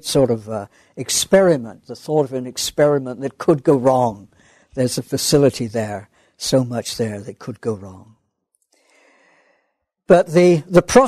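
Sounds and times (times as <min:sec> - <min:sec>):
faint breath: 0:04.3 - 0:04.8, 0:06.1 - 0:06.4, 0:08.7 - 0:10.0.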